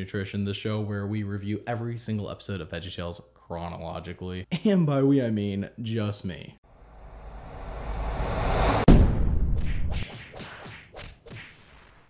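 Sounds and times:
whip-like swish: 9.5 - 11.8.

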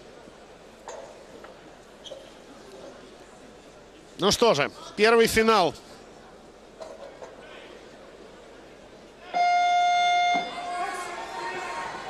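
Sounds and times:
murmur of voices: 0.0 - 12.0.

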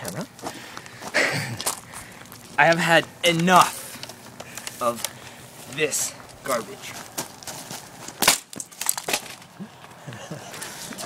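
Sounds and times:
laptop plastic crunching: 6.9 - 9.6
plastic pieces clattering: 8.2 - 9.5.

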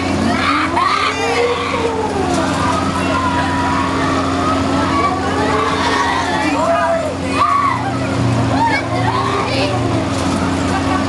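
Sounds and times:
ride machinery humming: 0.0 - 11.0
unclear voices: 0.0 - 11.0
people shouting: 0.2 - 9.7.

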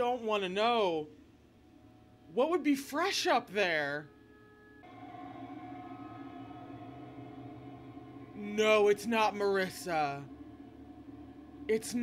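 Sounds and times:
sustained musical drone: 4.1 - 12.0.

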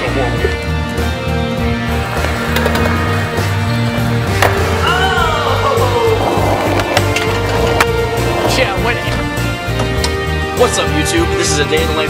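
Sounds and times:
background music: 0.0 - 12.0
skateboard wheels rolling: 1.6 - 10.0.

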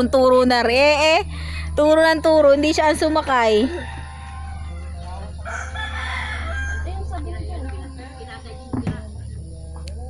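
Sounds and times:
rooster crowing: 2.4 - 7.2.

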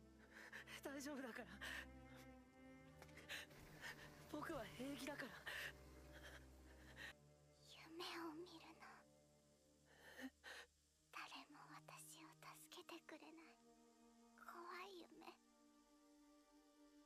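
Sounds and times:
soft background music: 0.0 - 17.0
whispered dialogue: 0.6 - 9.1, 11.1 - 13.6, 14.4 - 15.4.

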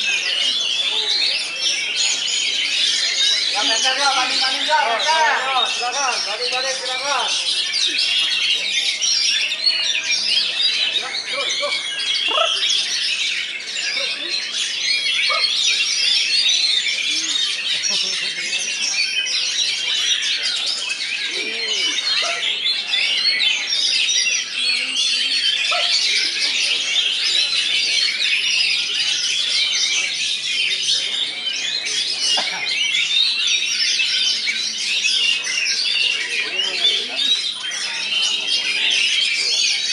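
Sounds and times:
chorus of songbirds chirping: 0.0 - 39.9.

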